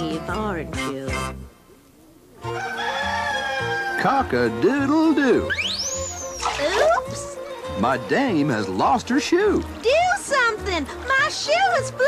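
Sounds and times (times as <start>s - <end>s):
soft background music: 0.0s - 1.7s, 2.3s - 12.0s
rooster crowing: 2.4s - 4.2s.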